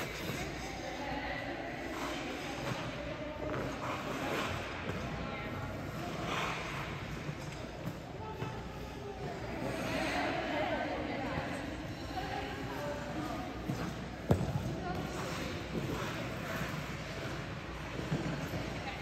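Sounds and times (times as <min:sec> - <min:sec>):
skate blades scraping on ice: 0:00.0 - 0:01.0, 0:01.8 - 0:10.5, 0:11.5 - 0:19.0
rink background noise: 0:00.0 - 0:19.0.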